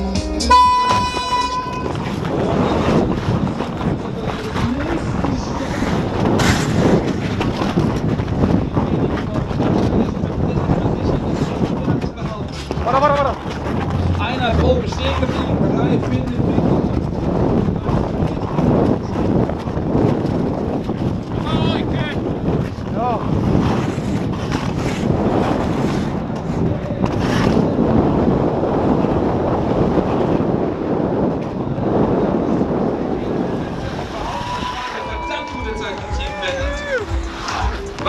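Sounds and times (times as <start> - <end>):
wind rushing over microphone: 0.0 - 38.0
skate blades scraping on ice: 1.9 - 17.0, 22.5 - 27.8, 33.9 - 38.0.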